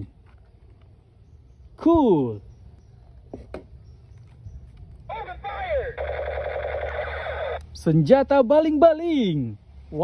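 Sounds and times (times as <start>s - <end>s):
rapid electronic warble: 6.0s - 7.6s.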